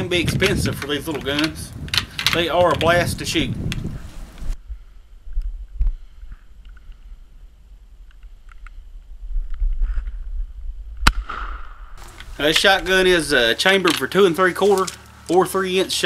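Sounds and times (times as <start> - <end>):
faint clicks and handling: 0.3 - 4.5, 12.0 - 15.5
low rumble: 1.7 - 13.6
shotgun shot with echo: 11.0 - 12.0.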